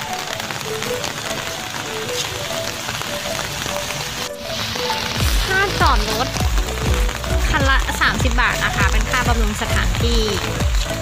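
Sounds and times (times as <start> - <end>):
light background music: 0.0 - 11.0
rain falling on pavement: 0.0 - 11.0.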